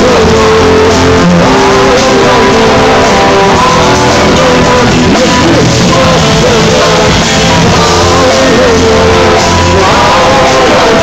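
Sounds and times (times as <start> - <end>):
live rock band playing: 0.0 - 11.0
man singing into a microphone: 0.0 - 11.0.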